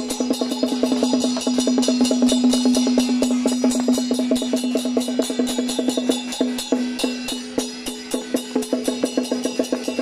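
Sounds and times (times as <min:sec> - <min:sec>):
cymbal clashes: 0:00.0 - 0:10.0
quick drum beats: 0:00.0 - 0:10.0.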